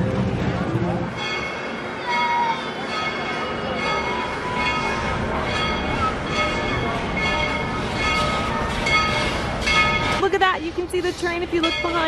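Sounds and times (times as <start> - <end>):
train bell ringing: 0.4 - 12.0.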